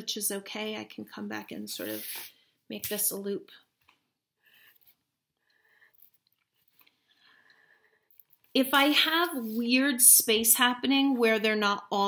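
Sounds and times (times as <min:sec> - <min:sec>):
marker squeaking on paper: 0:01.8 - 0:02.3.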